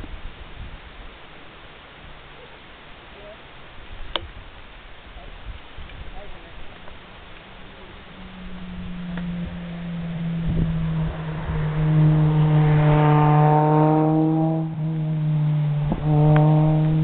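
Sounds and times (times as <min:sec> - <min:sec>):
vehicle engine running: 0:06.9 - 0:17.0.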